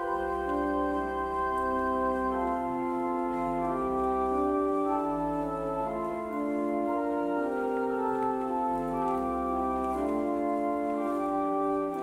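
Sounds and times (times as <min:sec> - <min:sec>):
pipe organ playing chords: 0:00.0 - 0:12.0.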